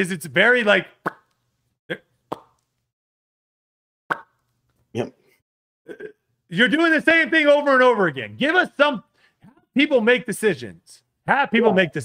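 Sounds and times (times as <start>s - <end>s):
man making mouth pops: 1.0s - 2.7s, 4.1s - 4.5s.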